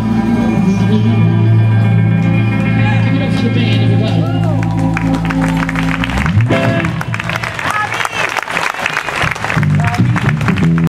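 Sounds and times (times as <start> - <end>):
audience applauding: 3.7 - 10.9.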